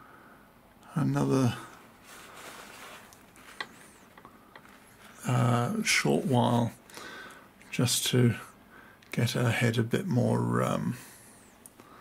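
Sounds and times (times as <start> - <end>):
faint clicks and taps from handling: 3.0 - 4.9.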